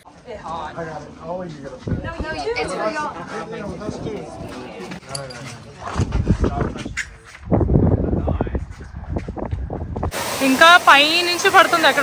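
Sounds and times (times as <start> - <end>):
wind buffeting microphone: 1.7 - 4.9, 5.7 - 10.4
people talking: 10.4 - 12.0.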